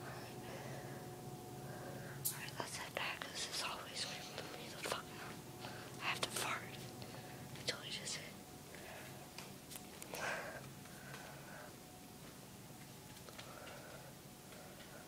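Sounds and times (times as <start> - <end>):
faint steady hum: 0.0 - 15.0
person whispering: 2.3 - 5.4, 6.0 - 6.8, 7.6 - 8.4.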